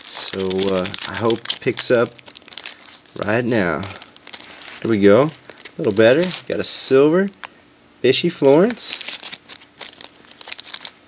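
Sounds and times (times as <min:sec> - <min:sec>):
foil wrapper tearing and crinkling: 0:00.0 - 0:06.7, 0:08.4 - 0:11.0.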